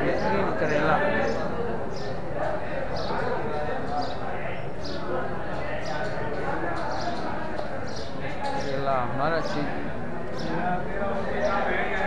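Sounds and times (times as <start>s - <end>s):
background chatter of men: 0.0s - 12.0s.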